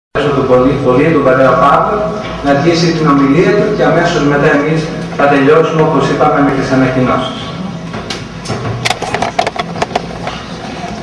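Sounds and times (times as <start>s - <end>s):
steady low hum: 0.2s - 11.0s
sharp clicks and knocks: 7.9s - 10.4s.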